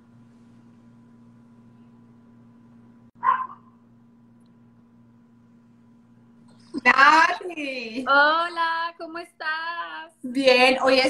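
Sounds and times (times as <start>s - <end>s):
dog barking: 3.2s - 3.8s.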